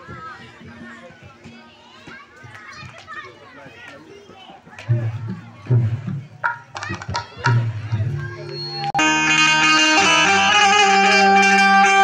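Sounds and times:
children's voices chattering: 0.0 - 9.0.

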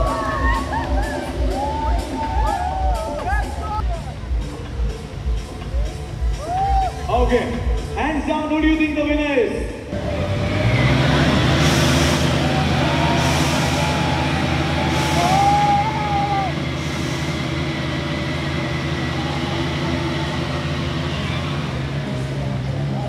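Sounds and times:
motorcycle engines revving high: 0.0 - 23.0.

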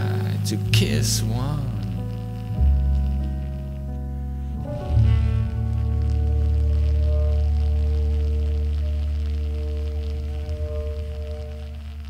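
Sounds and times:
deep steady low note: 0.0 - 12.0
jazz band sustained chord: 0.0 - 12.0.

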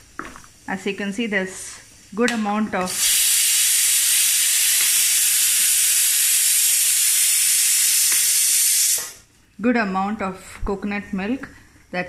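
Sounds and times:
loud steady hiss: 0.0 - 9.3.

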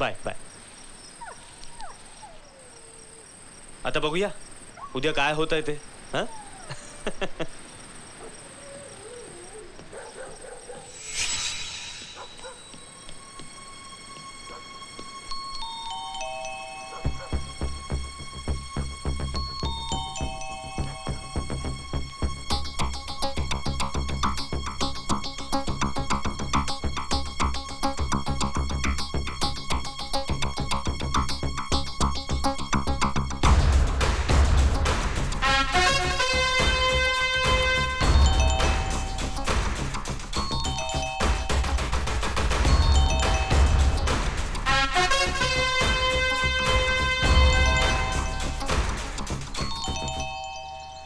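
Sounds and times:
crickets chirping: 0.0 - 33.4
electronic synthesizer music with beat: 45.6 - 50.3.

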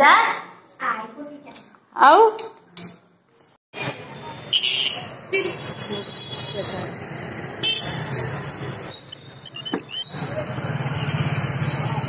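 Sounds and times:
street noise: 0.0 - 12.0
vehicle horns honking: 4.5 - 6.1, 7.6 - 8.1.

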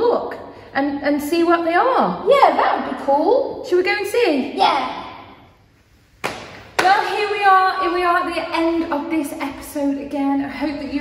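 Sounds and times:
woman speaking: 6.8 - 11.0.

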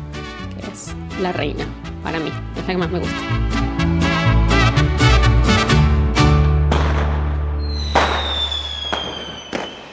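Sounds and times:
sharp crack: 6.7 - 9.9
high whistling tone gliding down: 7.6 - 9.9.

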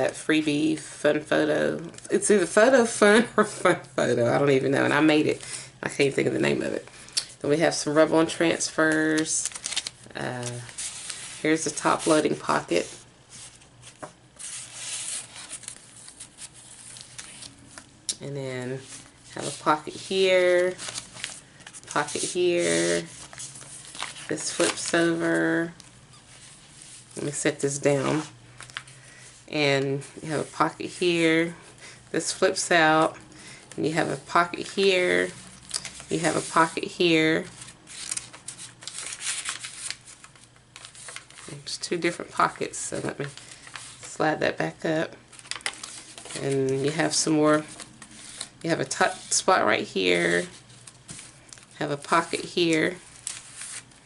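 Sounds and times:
paper and card rustling: 7.7 - 17.9, 18.7 - 31.6, 32.2 - 44.2, 45.3 - 54.0.

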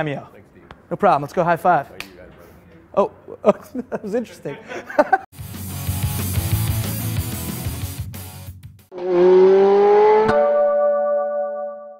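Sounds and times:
car engine revving: 8.9 - 10.6.

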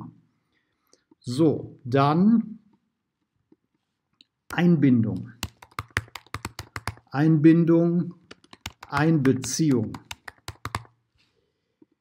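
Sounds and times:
computer keyboard typing: 5.4 - 7.2, 8.3 - 11.0.

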